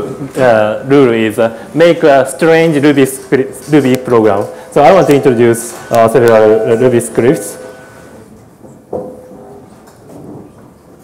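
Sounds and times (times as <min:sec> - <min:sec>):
person giving a talk: 0:00.0 - 0:07.8.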